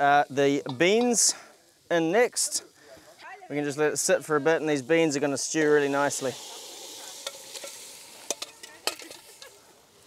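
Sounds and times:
soft steady hiss: 0.0 - 10.0.

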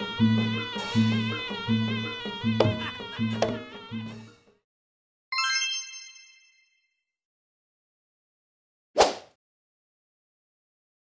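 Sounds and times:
bright bell-like chime: 5.4 - 7.0.

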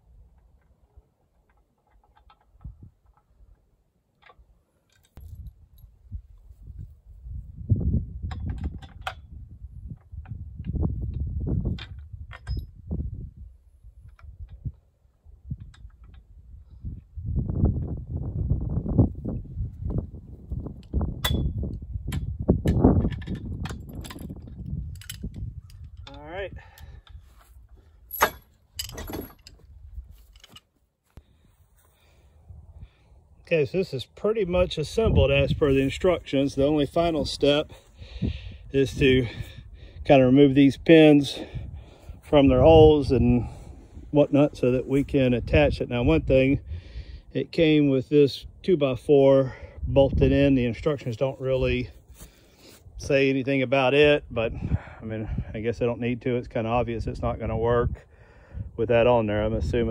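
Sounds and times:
low rumbling gusts: 5.2 - 30.2, 32.0 - 47.4, 54.0 - 59.9.

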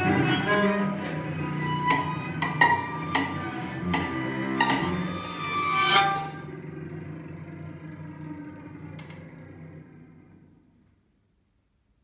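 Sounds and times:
string quartet low bowed notes: 0.0 - 10.6.

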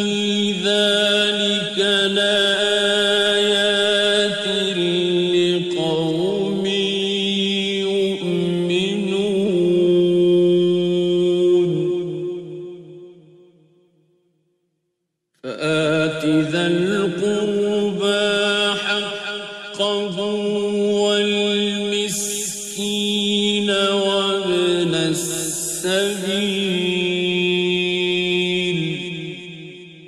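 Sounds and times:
man chanting melodically: 0.0 - 13.2, 15.4 - 30.0.

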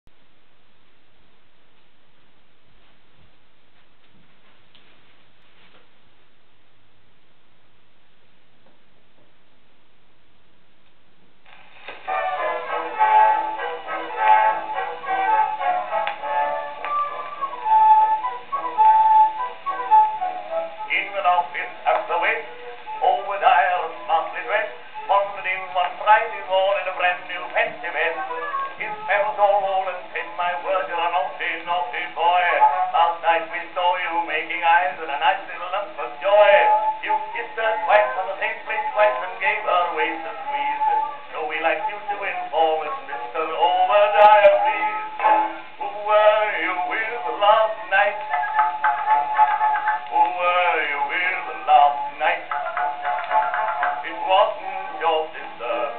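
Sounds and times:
small orchestra on old record: 0.1 - 55.9
man singing with band: 20.9 - 48.5, 50.1 - 52.6, 53.8 - 55.9.

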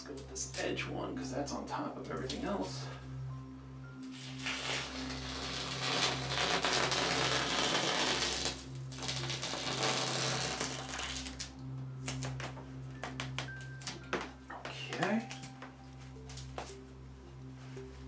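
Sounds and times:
masking tape peeling: 4.0 - 14.3.

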